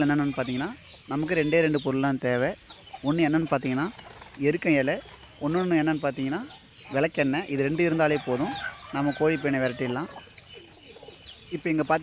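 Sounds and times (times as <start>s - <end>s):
hen clucking: 0.0s - 12.0s.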